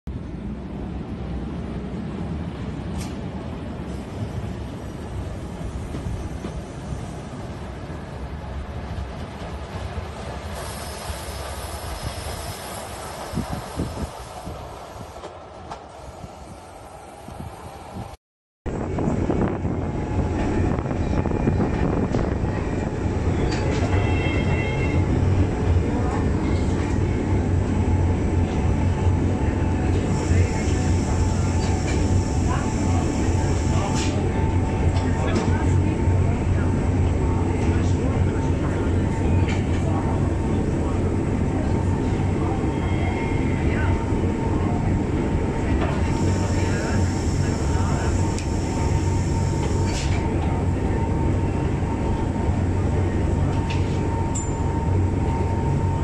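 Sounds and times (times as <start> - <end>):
train ride noise: 0.1 - 56.0
low hum inside carriage: 45.8 - 56.0.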